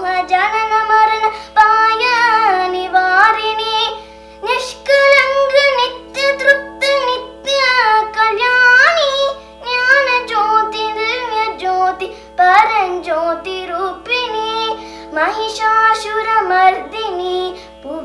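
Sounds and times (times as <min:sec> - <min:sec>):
girl singing devotional song: 0:00.0 - 0:18.0
singer breathing: 0:01.3 - 0:01.6, 0:04.0 - 0:04.4, 0:09.4 - 0:09.6, 0:12.1 - 0:12.4, 0:14.8 - 0:15.2, 0:17.5 - 0:17.8.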